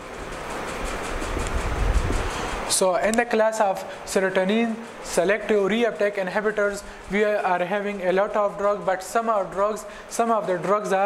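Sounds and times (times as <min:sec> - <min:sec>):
low steady rumble: 0:00.0 - 0:03.2.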